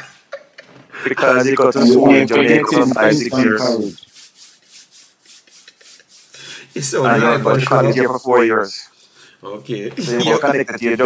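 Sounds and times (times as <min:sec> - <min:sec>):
hands rubbing together: 0:01.8 - 0:08.1.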